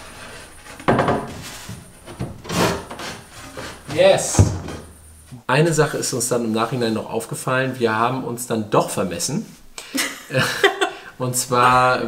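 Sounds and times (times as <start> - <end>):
wood panel scraping against board: 0.0 - 5.0.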